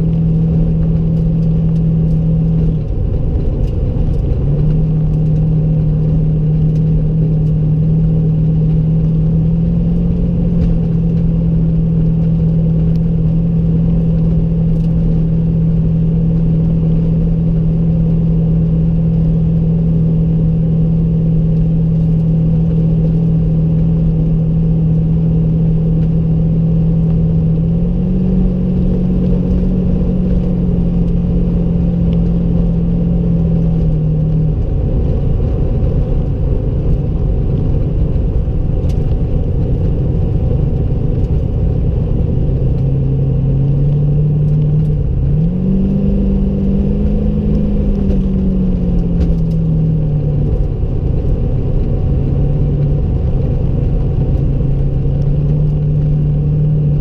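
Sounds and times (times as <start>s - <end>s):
car engine from inside cabin: 0.0s - 57.0s
road rumble: 0.0s - 57.0s.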